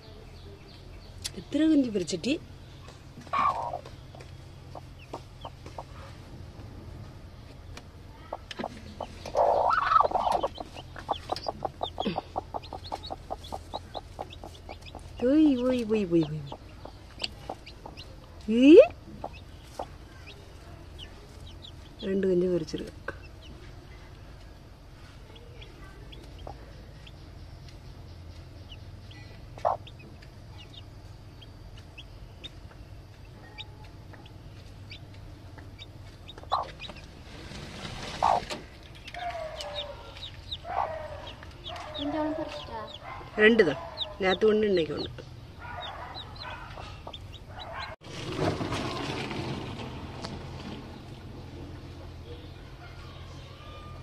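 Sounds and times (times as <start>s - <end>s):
chicks peeping: 0.2s - 6.5s, 7.4s - 49.4s
hen clucking softly: 3.3s - 6.2s, 8.3s - 18.2s, 19.2s - 20.4s, 29.6s - 30.0s, 35.8s - 37.0s, 38.0s - 43.0s, 45.7s - 47.9s.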